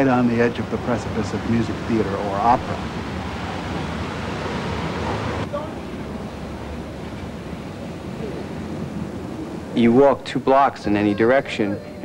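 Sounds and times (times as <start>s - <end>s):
city street traffic: 0.0s - 12.0s.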